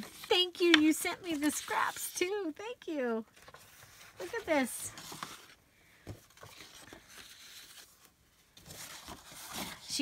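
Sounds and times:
paper rustling and sliding: 3.4 - 10.0.

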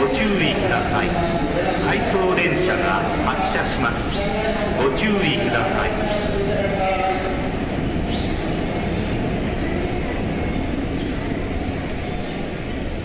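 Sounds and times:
train wheels rumbling on rail: 0.0 - 13.0.

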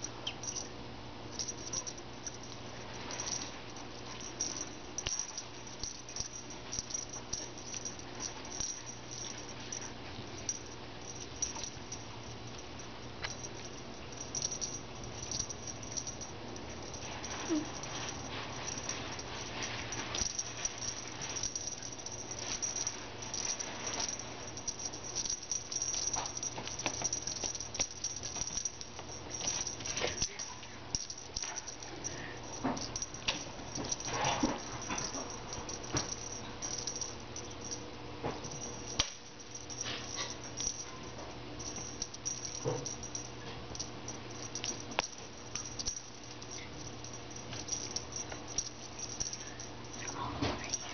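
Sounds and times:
steady low hum: 0.0 - 50.9
toy rustles and paw taps: 1.3 - 50.9
kittens scuffing on carpet: 15.4 - 37.2.

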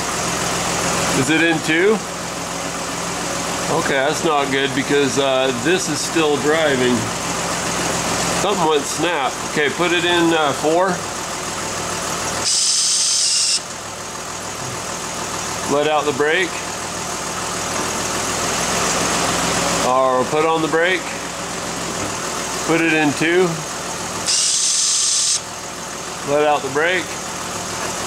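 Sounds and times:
engine idling: 0.0 - 28.0
high-pitched actuator whir: 12.4 - 13.7, 24.2 - 25.4.

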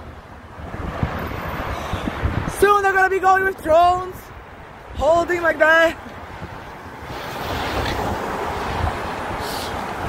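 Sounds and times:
street noise: 0.0 - 10.0
wind on microphone: 0.1 - 2.9, 6.1 - 10.0.

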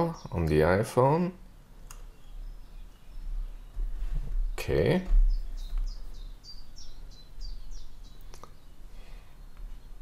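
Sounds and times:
small bird chirping: 0.0 - 10.0.

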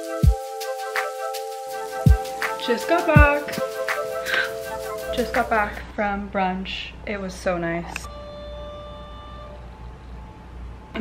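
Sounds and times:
ringing chime tone: 8.1 - 10.3.

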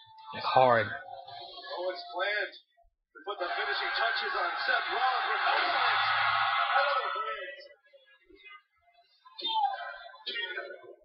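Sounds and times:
arena crowd noise: 3.2 - 11.0.

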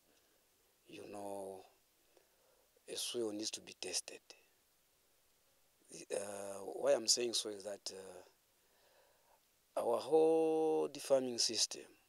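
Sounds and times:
man speaking: 0.9 - 1.7, 2.9 - 4.4, 5.9 - 8.3, 9.8 - 11.9.

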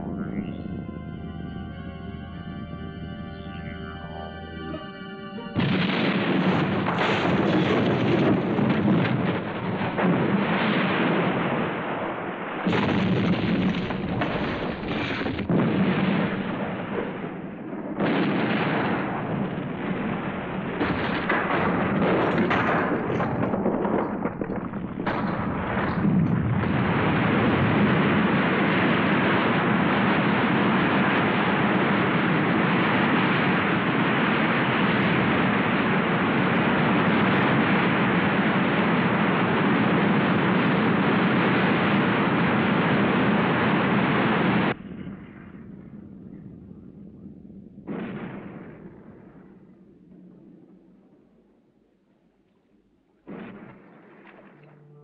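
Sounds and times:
continuous loud roar: 0.0 - 48.2
explosion blasts and rumbling: 0.0 - 51.3, 53.3 - 54.9.

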